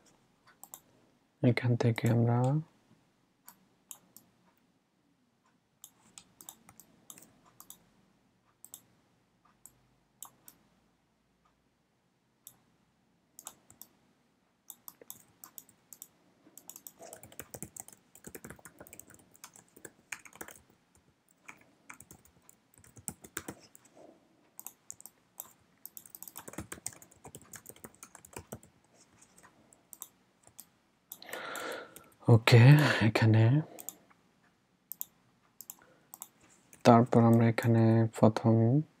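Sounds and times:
computer keyboard typing: 0:05.8 - 0:07.8, 0:14.7 - 0:23.9, 0:24.6 - 0:32.2, 0:33.7 - 0:34.0, 0:34.9 - 0:37.4.

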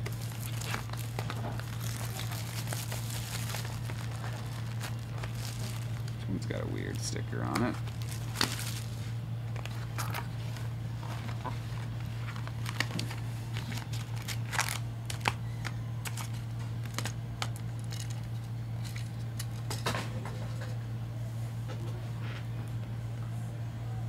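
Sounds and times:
shrink wrap crinkling: 0:00.0 - 0:19.7
foil card packs rustling: 0:00.0 - 0:19.8
low hum: 0:00.0 - 0:24.0.

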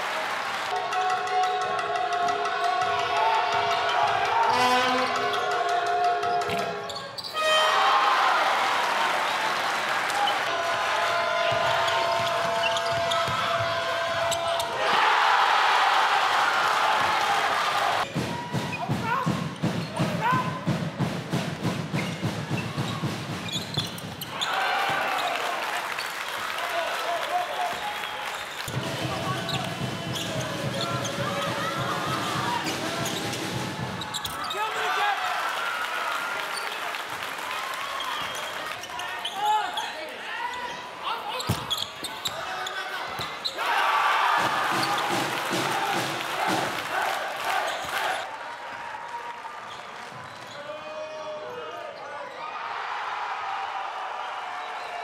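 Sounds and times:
crowd in a large hall: 0:00.0 - 0:55.0.

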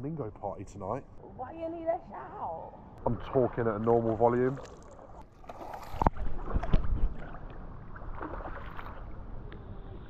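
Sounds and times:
pool water splashing and lapping: 0:02.3 - 0:10.0.

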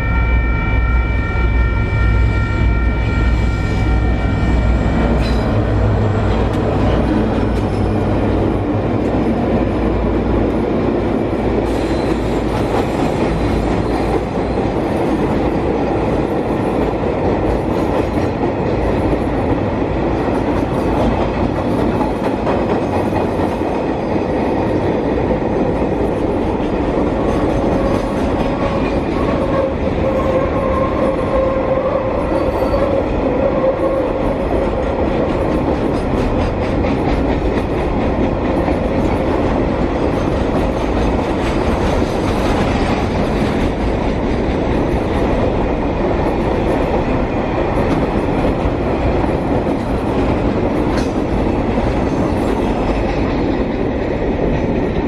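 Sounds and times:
train wheel squealing: 0:00.0 - 0:08.2, 0:11.7 - 0:14.8, 0:27.2 - 0:34.4
train wagons rumbling and clattering: 0:00.0 - 0:55.0.

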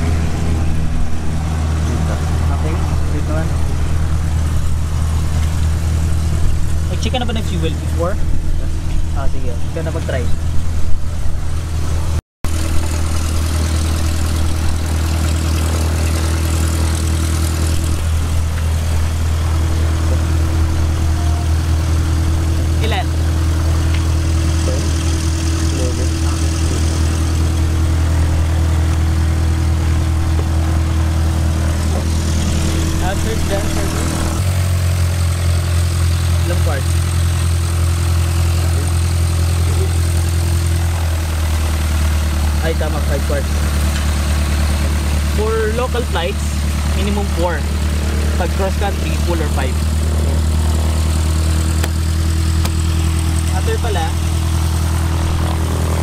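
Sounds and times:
engine idling: 0:00.0 - 0:56.0.

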